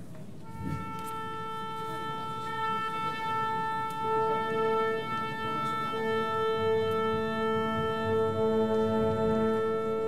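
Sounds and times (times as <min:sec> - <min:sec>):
instruments sounding in unison: 0:00.4 - 0:10.0
woodwind holding a note: 0:00.4 - 0:10.0.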